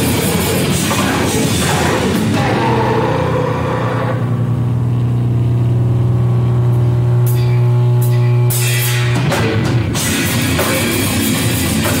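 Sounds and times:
heavy live band: 0.0s - 5.0s, 7.2s - 12.0s
distorted low droning note: 0.0s - 12.0s.

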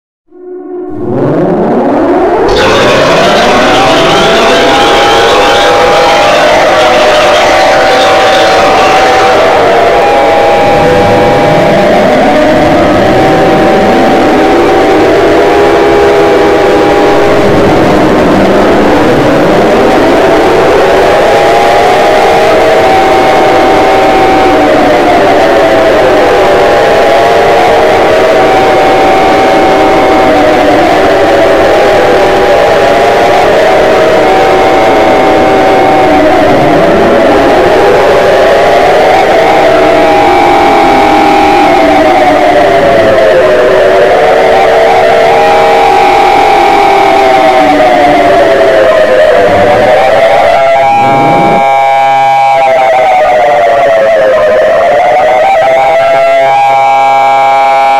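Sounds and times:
rising and falling siren tones: 0.3s - 57.9s
steady held alarm tones: 0.3s - 57.9s.

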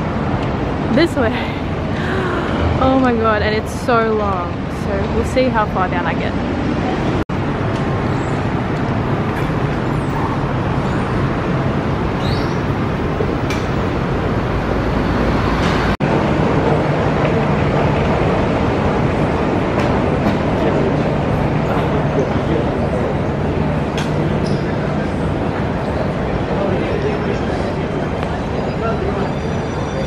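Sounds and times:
road traffic: 0.0s - 30.0s.

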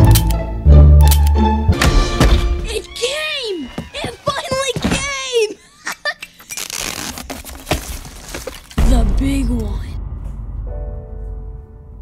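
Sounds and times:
background music: 0.0s - 3.0s, 8.8s - 12.0s.

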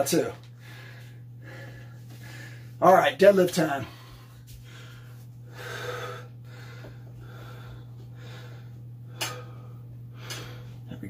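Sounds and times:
steady low hum: 0.0s - 11.0s
man breathing hard: 0.5s - 2.8s, 3.8s - 10.9s.

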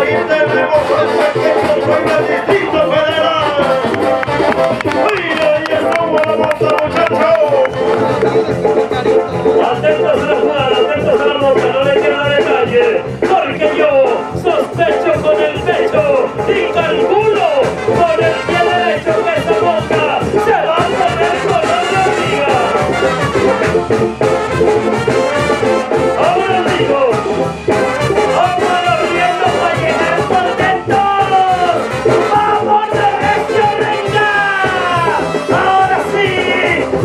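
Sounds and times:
latin band music with brass horns: 0.0s - 37.0s.

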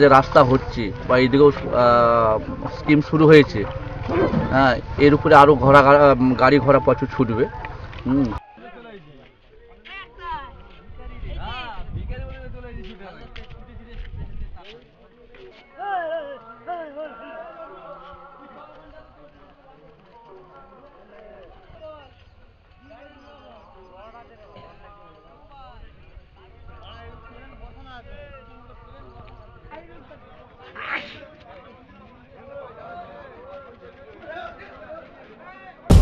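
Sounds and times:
faint voices talking: 0.0s - 36.0s
low rumble: 0.2s - 8.4s.

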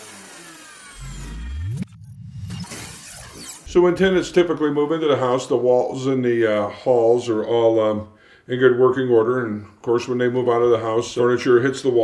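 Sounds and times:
low synth swell rising in pitch: 0.8s - 4.4s
high tones gliding downward: 0.8s - 4.9s.

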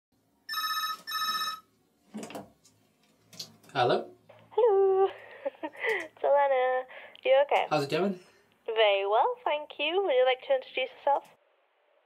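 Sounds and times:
telephone double ring: 0.5s - 1.7s.

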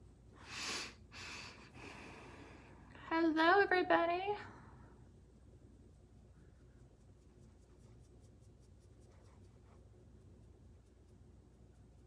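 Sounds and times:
makeup brush rubbing on skin: 5.8s - 12.0s.

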